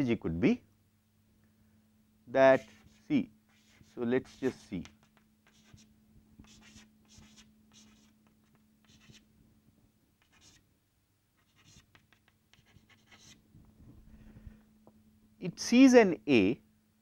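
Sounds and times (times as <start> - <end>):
chalk tapping and scratching: 2.6 - 9.2, 10.2 - 10.6, 11.4 - 13.4.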